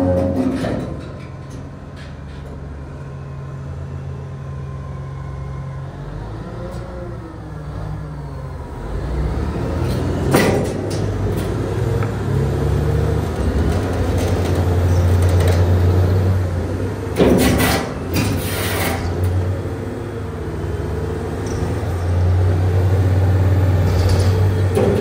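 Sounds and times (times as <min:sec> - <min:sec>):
diesel engines running: 0:00.0 - 0:25.0.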